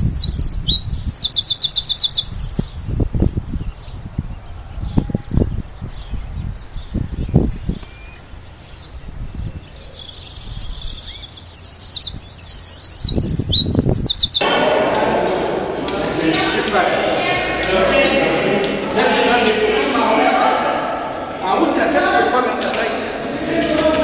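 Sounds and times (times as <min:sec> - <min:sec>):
small birds chirping: 0:00.0 - 0:14.5
wind buffeting microphone: 0:00.0 - 0:24.0
people talking in echoing hall: 0:14.0 - 0:24.0.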